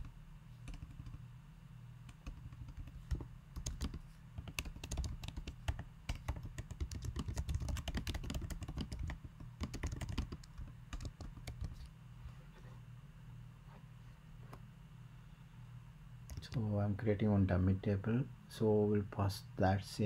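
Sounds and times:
low steady hum: 0:00.0 - 0:20.0
computer keyboard typing: 0:00.6 - 0:01.2, 0:02.1 - 0:11.9, 0:16.3 - 0:16.6.

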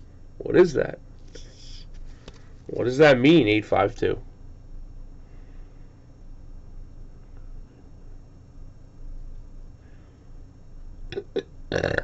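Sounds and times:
rough throaty vocal sound: 0:11.1 - 0:12.0.

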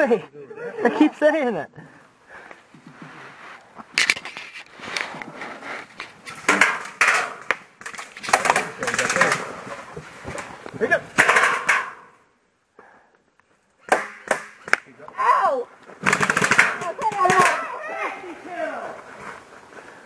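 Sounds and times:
airsoft guns firing: 0:13.9 - 0:14.8, 0:16.0 - 0:17.6.

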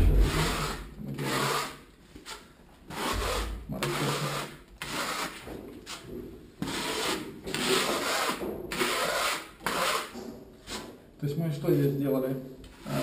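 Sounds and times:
trowel scraping plaster on wall: 0:00.0 - 0:11.1.

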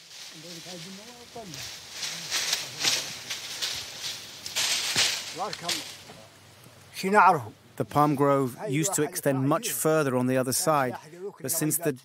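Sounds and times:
dry palm fronds rustling: 0:00.0 - 0:11.8
man's voice: 0:06.9 - 0:12.0.

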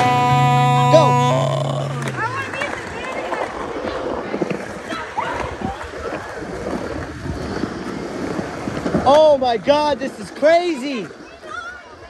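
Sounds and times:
children calling out: 0:00.0 - 0:03.1
skateboard wheels rolling on concrete: 0:00.0 - 0:12.0.

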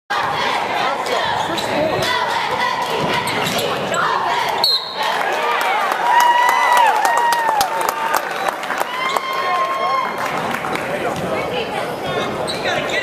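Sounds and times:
spectators' voices echoing: 0:00.1 - 0:13.0.

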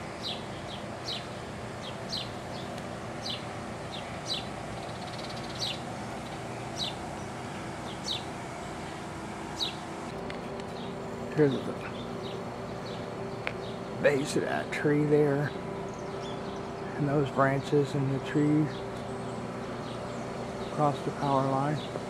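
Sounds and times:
bird chirping: 0:00.0 - 0:09.9, 0:10.7 - 0:13.9, 0:15.4 - 0:17.0, 0:18.6 - 0:22.0
low background hum: 0:00.0 - 0:22.0.

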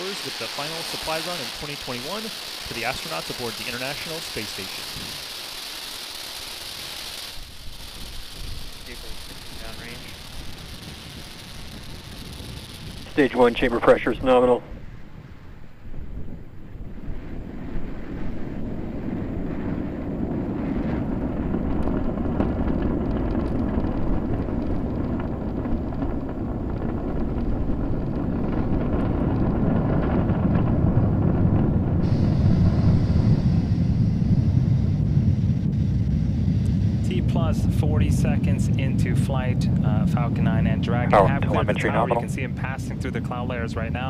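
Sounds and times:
high hiss: 0:00.0 - 0:13.7
rocket engines rumbling: 0:00.0 - 0:44.0.

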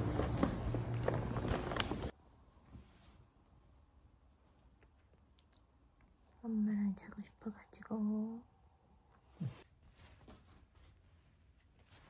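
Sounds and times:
woman talking softly: 0:06.4 - 0:08.5.

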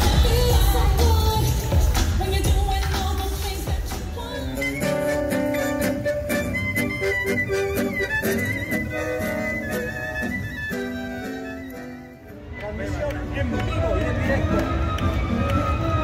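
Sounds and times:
acoustic guitar accompaniment: 0:04.6 - 0:12.4
bandoneon melody: 0:04.6 - 0:12.4.

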